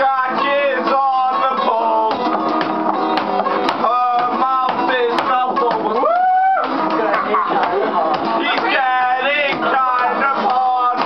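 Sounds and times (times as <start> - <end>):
people singing along: 0.0 - 2.2, 8.4 - 11.0
acoustic guitar strumming: 0.0 - 11.0.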